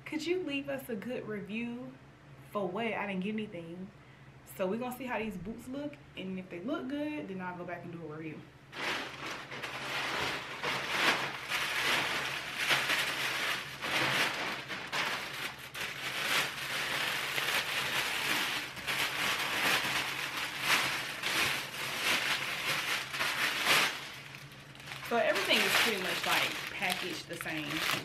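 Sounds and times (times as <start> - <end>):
plastic wrap crinkling: 8.7 - 28.0.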